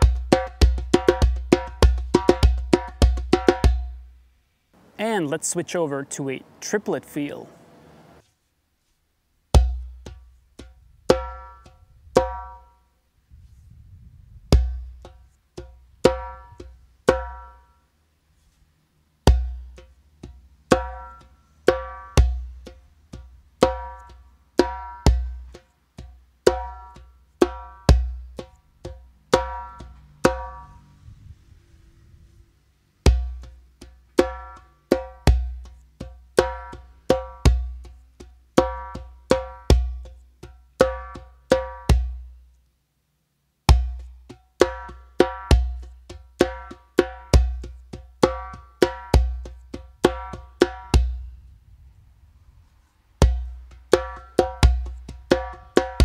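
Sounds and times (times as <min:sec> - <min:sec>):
hand drum bass strokes and slaps: 0:00.0 - 0:04.0, 0:09.6 - 0:12.7, 0:14.5 - 0:17.5, 0:19.2 - 0:30.7, 0:33.0 - 0:42.3, 0:43.7 - 0:51.2, 0:53.2 - 0:56.0.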